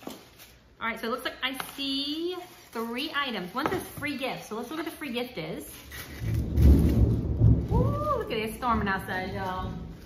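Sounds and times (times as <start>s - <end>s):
thunder rumbling: 6.1s - 10.0s.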